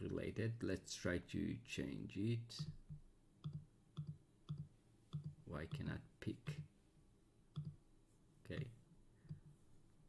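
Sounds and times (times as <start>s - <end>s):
computer mouse clicks: 2.6s - 6.0s, 7.5s - 7.8s.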